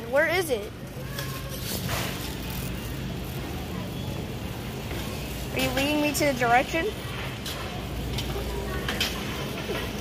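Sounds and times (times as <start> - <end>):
shopping cart rolling on concrete: 0.0 - 10.0.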